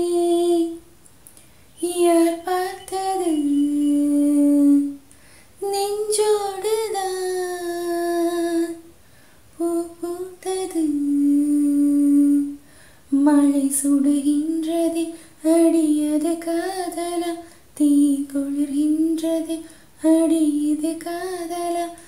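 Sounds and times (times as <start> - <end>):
woman singing unaccompanied: 0.0 - 0.9, 1.8 - 8.9, 9.6 - 22.0.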